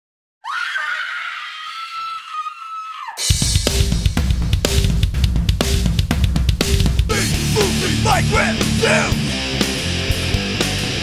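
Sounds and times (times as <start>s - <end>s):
high-pitched scream-like cry: 0.4s - 3.3s.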